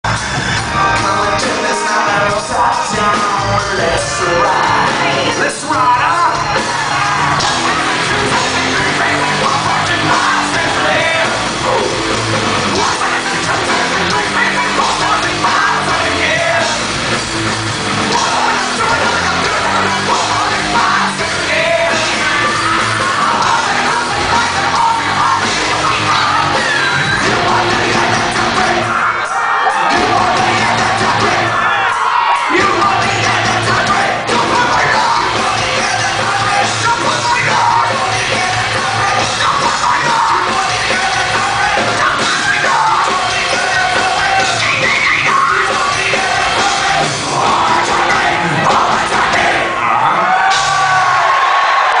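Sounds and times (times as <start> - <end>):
bass guitar: 0.0 - 52.0
drums: 0.0 - 52.0
lead vocals singing and shouting: 0.0 - 52.0.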